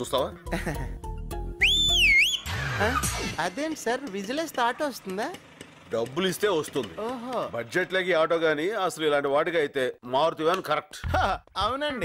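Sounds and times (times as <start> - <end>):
loud two-finger whistle: 1.6 - 2.6.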